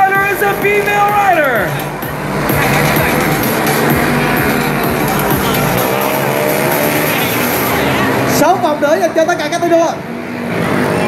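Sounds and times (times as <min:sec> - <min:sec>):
racing motorcycles passing: 0:00.0 - 0:11.0.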